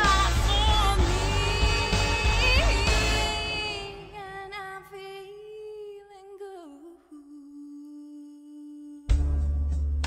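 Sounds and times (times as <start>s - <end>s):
band with heavy bass and drums: 0.0s - 3.4s.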